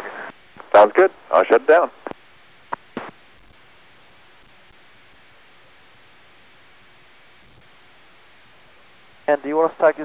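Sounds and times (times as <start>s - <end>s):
radio hiss: 0.0s - 10.0s.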